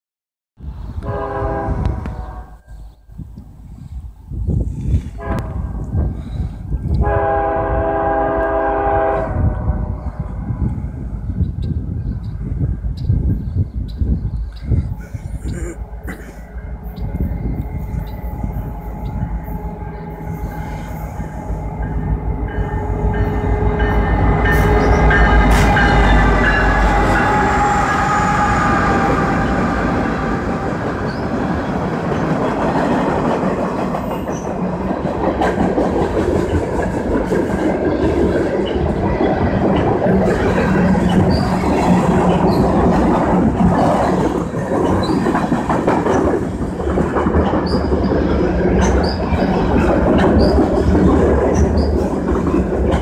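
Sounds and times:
low steady train rumble: 0.6s - 53.0s
locomotive air horn: 1.0s - 2.8s, 5.2s - 5.8s, 7.0s - 9.9s, 18.0s - 30.5s
freight cars rolling: 14.4s - 53.0s.

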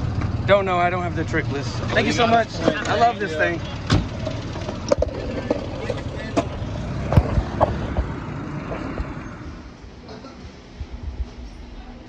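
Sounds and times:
car engine running: 0.0s - 9.8s.

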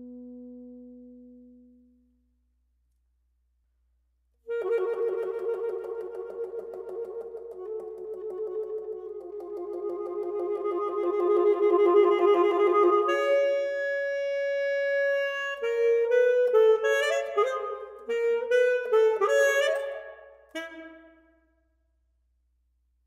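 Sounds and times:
alto saxophone playing: 0.0s - 1.9s, 4.5s - 21.3s.

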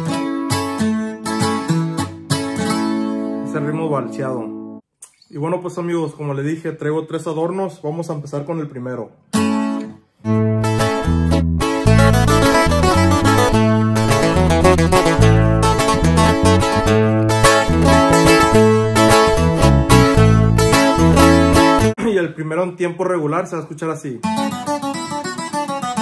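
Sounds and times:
acoustic guitar playing: 0.0s - 5.2s, 9.2s - 22.2s, 23.8s - 26.0s.

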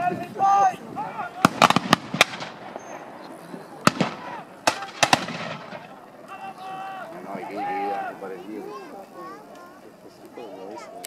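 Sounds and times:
voices: 0.0s - 11.0s
gunshots with echo: 1.4s - 3.2s, 3.8s - 6.0s.

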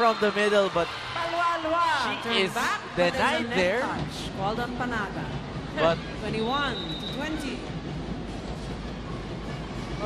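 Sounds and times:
crowd noise in indoor arena: 0.0s - 10.0s.

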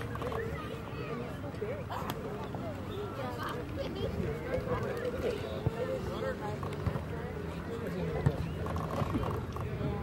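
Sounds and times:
people chattering and calling: 0.0s - 10.0s.

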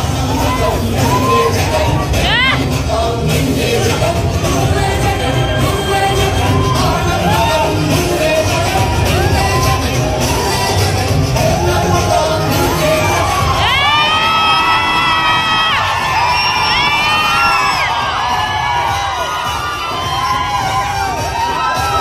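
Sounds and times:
crowd cheering and shouting: 0.0s - 22.0s
long drawn-out shouts: 0.0s - 22.0s.

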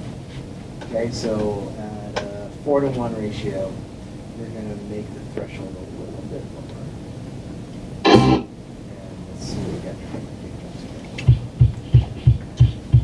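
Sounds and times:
loud short noise burst: 8.0s - 8.5s
kick drum thumps: 11.3s - 13.0s.

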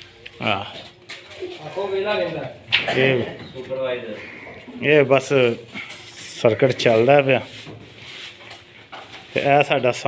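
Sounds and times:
background noise: 0.0s - 10.0s
man speaking: 1.5s - 7.5s.

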